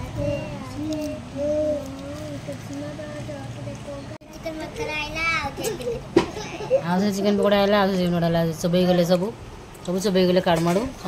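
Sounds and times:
child speaking: 0.0s - 6.8s.

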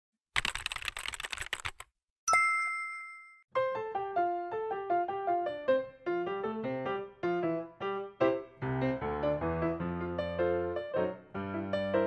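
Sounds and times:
rapid run of clicks: 0.4s - 1.9s
bright ding: 2.3s - 3.4s.

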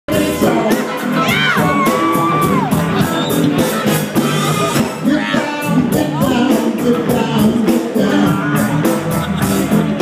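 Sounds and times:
blues band playing: 0.1s - 10.0s
drums keeping steady beat: 0.1s - 10.0s.

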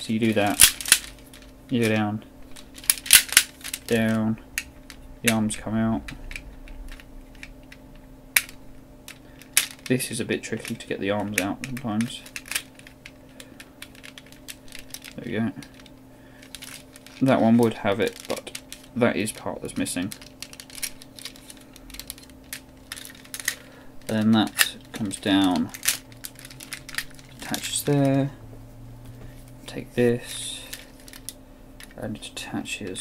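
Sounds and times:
toy parts clicking: 0.2s - 2.0s, 2.6s - 4.7s, 8.4s - 9.9s, 10.6s - 13.0s, 13.8s - 17.4s, 18.0s - 18.9s, 19.7s - 28.2s
sharp plastic clacks: 0.3s - 2.0s, 2.6s - 5.4s, 10.6s - 17.2s, 19.8s - 28.2s.

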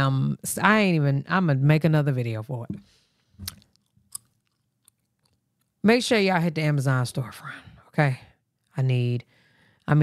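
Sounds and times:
woman speaking: 0.0s - 2.8s, 5.8s - 9.3s.

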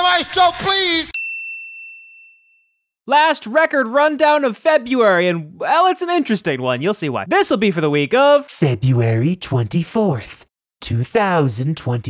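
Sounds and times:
notification bell ding: 1.2s - 2.8s.

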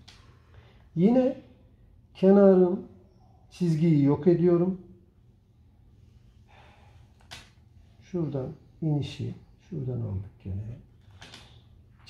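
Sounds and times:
low steady hum: 0.0s - 12.0s
short sharp breath: 6.4s - 7.3s.

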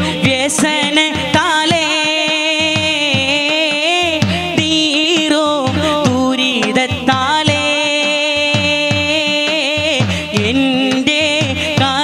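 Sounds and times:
man singing devotional song: 0.0s - 12.0s
percussion beat: 0.0s - 12.0s.

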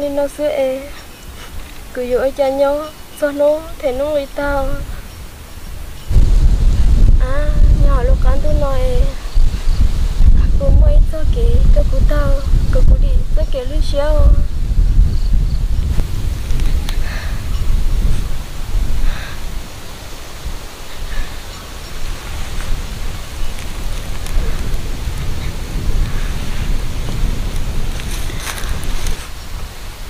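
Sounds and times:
wind buffeting microphone: 0.0s - 30.0s
faint rustles and clicks: 20.8s - 29.7s.

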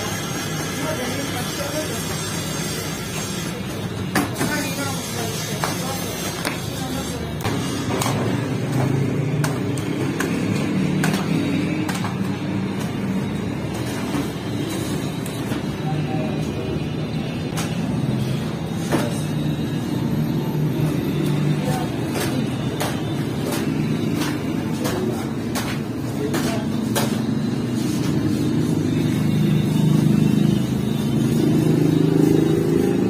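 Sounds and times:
knocks and clatters of dough handling: 7.4s - 15.8s, 21.1s - 29.0s.

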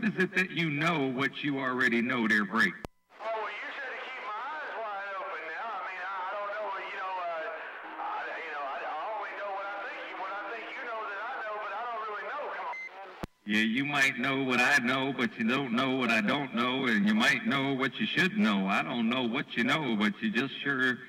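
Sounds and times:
voice over radio receiver: 0.0s - 21.0s
radio hiss: 2.6s - 13.3s.

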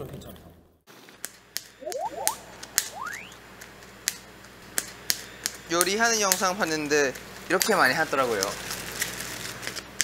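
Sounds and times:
short rising whistle: 1.8s - 3.4s.

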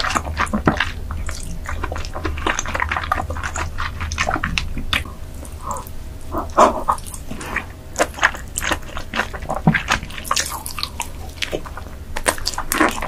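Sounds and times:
smacking and slurping: 0.0s - 13.0s
wet mouth eating sounds: 0.0s - 13.0s.

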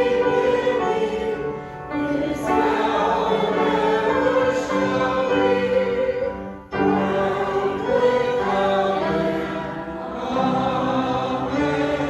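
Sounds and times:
piano accompaniment: 0.0s - 12.0s.

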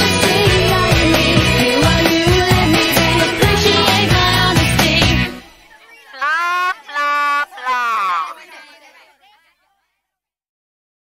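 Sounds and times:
high-pitched drawn-out voice: 6.1s - 8.4s.

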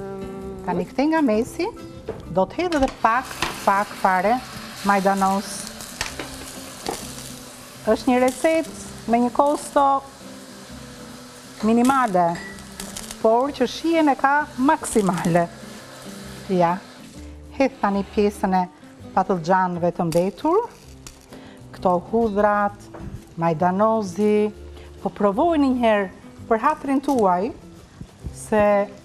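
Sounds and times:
stew sizzling in a frying pan: 2.9s - 19.2s, 20.2s - 29.0s.

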